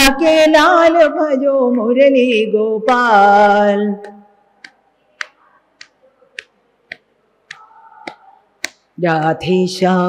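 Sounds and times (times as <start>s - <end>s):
faint held singing voice: 2.9s - 10.0s.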